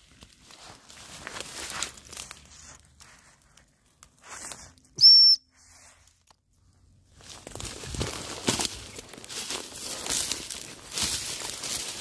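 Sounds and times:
dry reeds and grass rustling: 0:00.0 - 0:12.0
short high whistle: 0:05.0 - 0:05.6.

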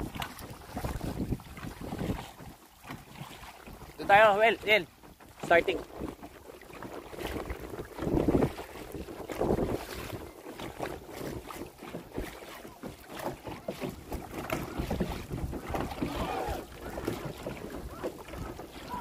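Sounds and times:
wind buffeting microphone: 0:00.0 - 0:02.6, 0:05.7 - 0:11.6, 0:14.2 - 0:19.0
water splashing from paddles: 0:00.0 - 0:19.0.

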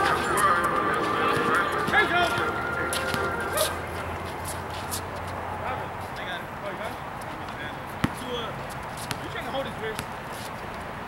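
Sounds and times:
person shouting: 0:03.5 - 0:03.8
ball knocking on concrete court: 0:08.0 - 0:08.4, 0:09.0 - 0:10.1.

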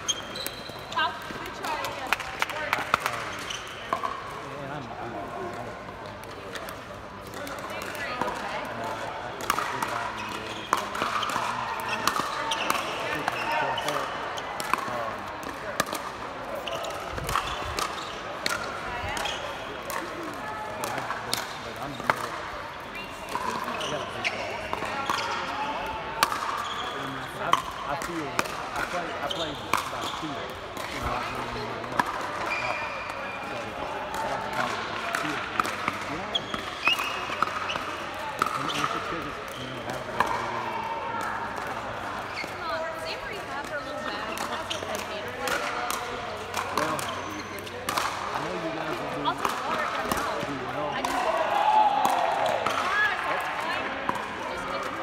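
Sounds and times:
paddles hitting plastic ball: 0:06.0 - 0:22.5, 0:33.5 - 0:40.4, 0:44.3 - 0:55.0.

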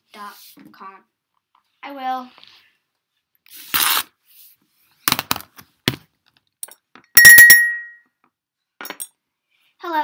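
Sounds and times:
bright ringing clink: 0:07.2 - 0:08.0.

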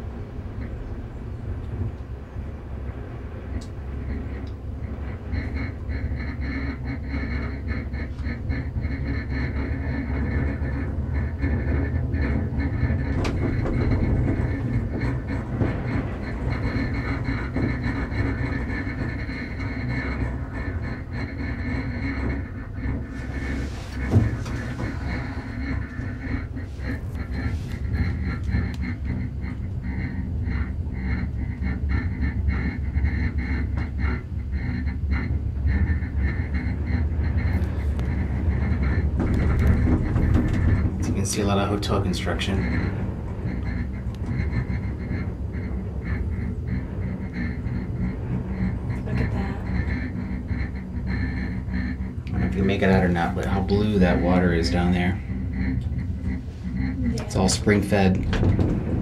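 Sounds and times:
gondola cabin rumble: 0:00.0 - 0:59.0.

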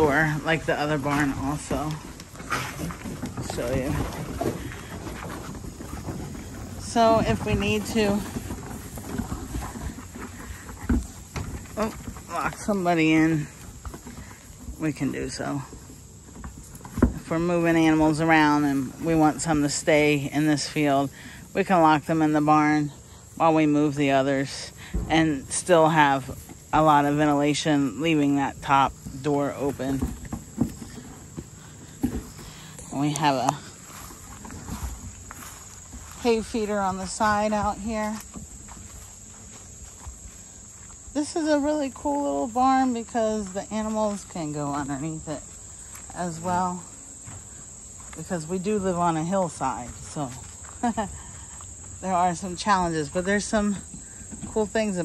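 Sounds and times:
goat hooves trotting on dirt: 0:00.0 - 0:55.0
low outdoor background: 0:00.0 - 0:55.0.

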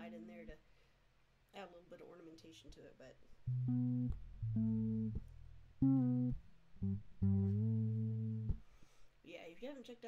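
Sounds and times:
fretless electric bass notes: 0:03.4 - 0:08.7.

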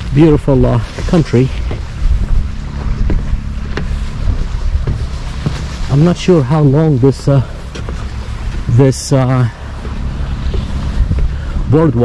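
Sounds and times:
footsteps on wooden boardwalk: 0:00.0 - 0:12.0
wind buffeting microphone: 0:00.0 - 0:12.0.

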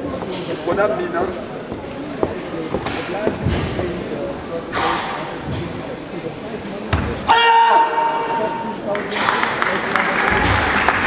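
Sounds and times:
loud held shout: 0:07.3 - 0:08.7.

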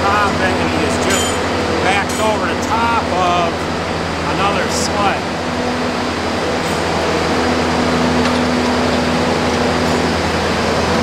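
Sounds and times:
steady hum: 0:00.0 - 0:11.0
truck engine: 0:00.0 - 0:11.0
ventilation fans running: 0:00.0 - 0:11.0.

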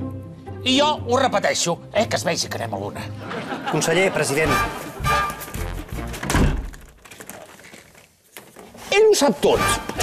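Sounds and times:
music: 0:00.0 - 0:06.8, 0:09.3 - 0:10.0
wooden door thudding shut: 0:06.1 - 0:07.0.

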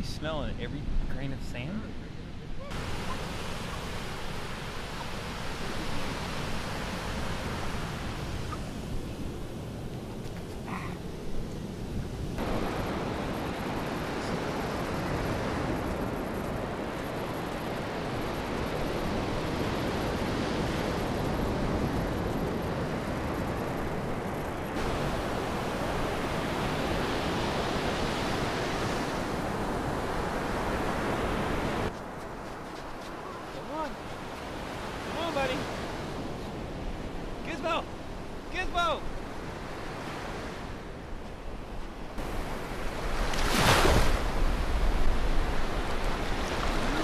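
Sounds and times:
ocean surf: 0:00.0 - 0:47.0
breaking waves: 0:02.7 - 0:10.2, 0:11.2 - 0:32.4, 0:33.0 - 0:40.8, 0:42.1 - 0:47.0.

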